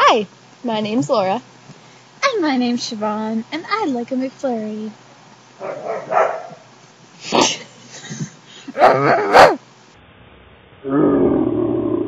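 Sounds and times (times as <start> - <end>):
stifled breathy laughter: 7.2 - 9.2.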